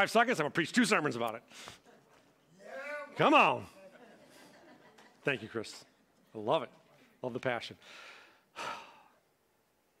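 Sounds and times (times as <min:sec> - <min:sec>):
man sighing: 0:08.5 - 0:09.2.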